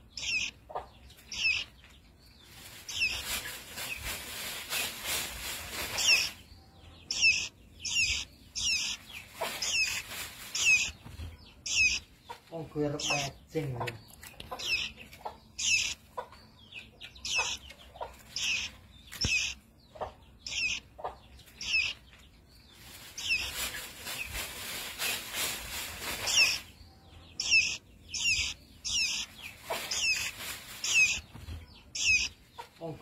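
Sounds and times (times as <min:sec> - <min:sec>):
fledgling bird chirping: 0:00.0 - 0:33.0.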